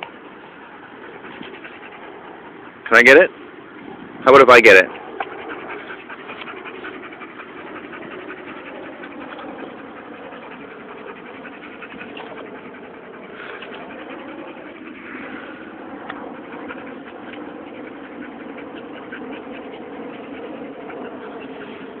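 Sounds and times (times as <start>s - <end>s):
dog panting: 0.0s - 3.4s, 4.3s - 22.0s
steady hum: 0.0s - 22.0s.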